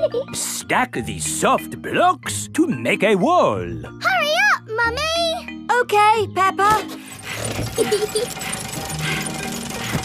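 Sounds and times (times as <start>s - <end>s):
light background music: 0.0s - 10.0s
cartoon mechanical sound effect: 7.2s - 10.0s.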